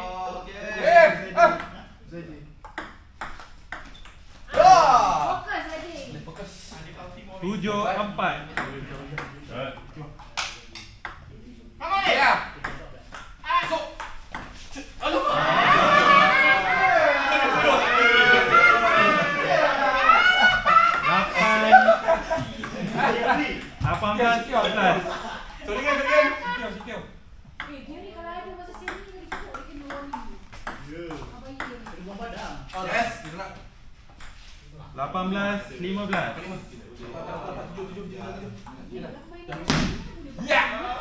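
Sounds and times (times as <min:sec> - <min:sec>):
men's voices: 0:11.4 - 0:27.1, 0:34.9 - 0:39.1
loud voices: 0:14.7 - 0:24.0.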